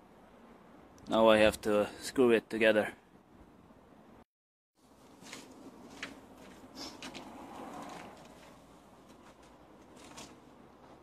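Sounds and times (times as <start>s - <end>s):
rustling of clothes: 4.8s - 11.0s.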